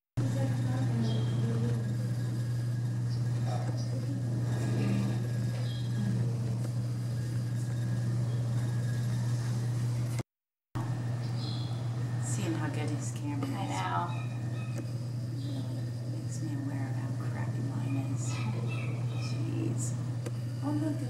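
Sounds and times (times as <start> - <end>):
steady low hum: 0.2 - 10.2, 10.8 - 21.0
quiet voices: 3.2 - 6.9.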